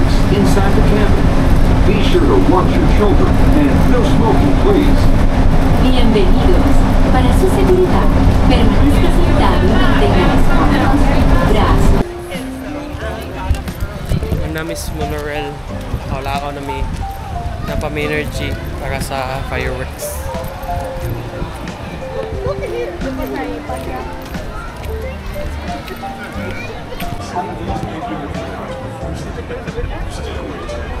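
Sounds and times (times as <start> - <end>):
bus running noise: 0.0 - 31.0
faint music: 0.0 - 31.0
passengers chattering: 0.0 - 31.0
voices outdoors: 0.0 - 31.0.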